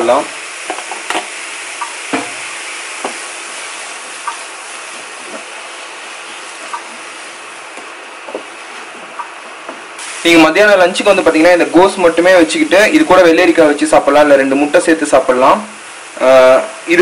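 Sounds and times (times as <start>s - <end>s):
vegetables sizzling in a pan: 0.0s - 17.0s
spatula tapping on a pan: 0.7s - 2.4s, 3.0s - 3.2s.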